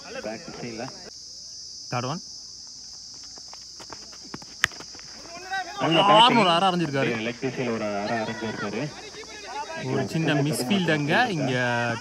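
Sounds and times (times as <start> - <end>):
insects droning: 0.0 - 12.0
faint footsteps: 2.6 - 5.8, 6.8 - 9.8.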